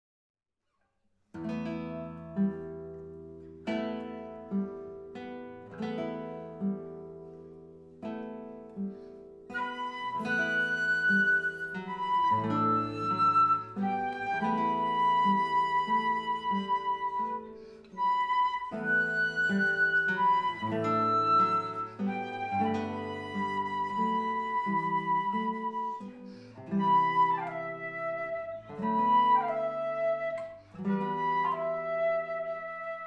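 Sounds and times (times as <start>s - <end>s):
acoustic guitar picking: 1.4s - 32.0s
flute melody: 9.5s - 33.0s.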